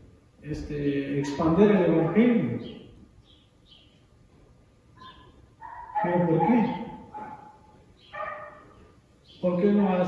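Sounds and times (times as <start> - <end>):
dog yipping: 1.2 - 2.6, 5.0 - 8.8.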